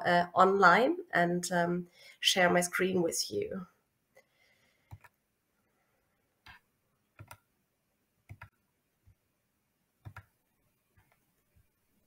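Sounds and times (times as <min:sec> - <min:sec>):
computer mouse clicks: 0:04.9 - 0:05.2, 0:06.4 - 0:07.5, 0:08.3 - 0:08.6, 0:10.0 - 0:11.3.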